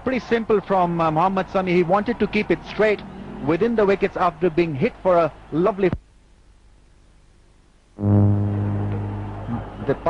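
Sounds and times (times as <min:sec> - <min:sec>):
man speaking: 0:00.0 - 0:06.0
loud low horn tone: 0:08.0 - 0:10.0.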